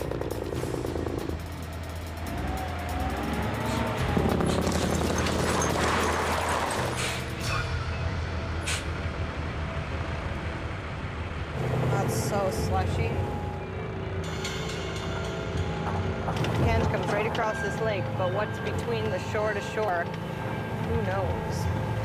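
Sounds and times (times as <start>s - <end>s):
background music: 0.0s - 22.0s
diesel truck engine running: 0.0s - 22.0s.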